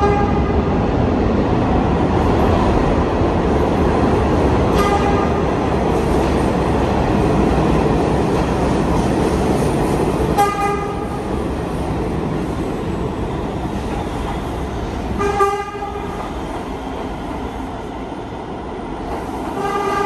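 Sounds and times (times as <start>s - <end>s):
train horn toot: 0.0s - 0.6s, 4.7s - 5.4s, 10.4s - 11.2s, 15.2s - 16.1s, 19.6s - 20.0s
subway train rumbling: 0.0s - 20.0s.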